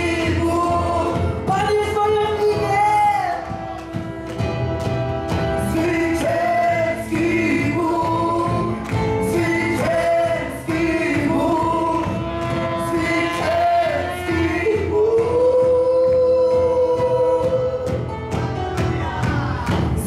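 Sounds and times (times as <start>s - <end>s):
worship band playing: 0.0s - 20.0s
voices singing held notes: 5.4s - 18.0s.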